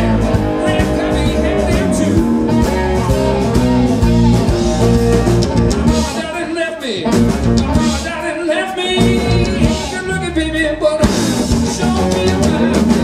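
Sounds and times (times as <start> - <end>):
lap slide guitar: 0.0 - 6.2, 7.0 - 8.2, 8.8 - 13.0
bass guitar: 0.0 - 13.0
drum kit: 0.0 - 13.0.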